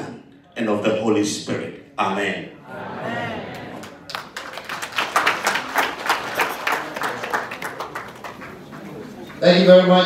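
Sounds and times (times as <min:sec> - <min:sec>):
hands clapping: 0:03.8 - 0:09.4.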